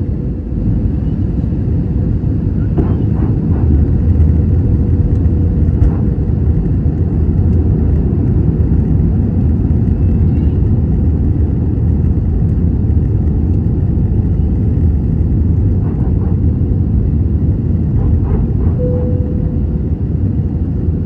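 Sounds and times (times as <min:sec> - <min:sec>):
airplane cabin rumble: 0:00.0 - 0:21.0.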